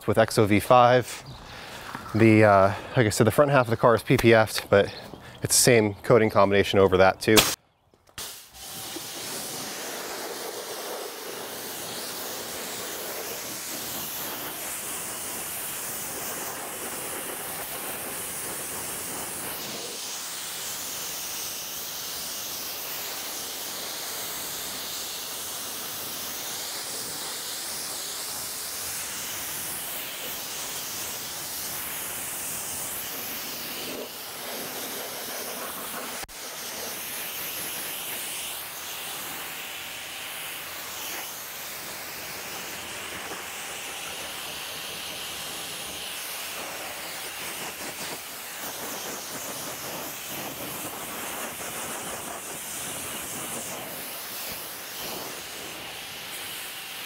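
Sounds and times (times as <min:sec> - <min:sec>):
pressure washer spraying water: 0:07.4 - 0:07.6, 0:08.2 - 0:57.0
sharp click: 0:07.4 - 0:08.3.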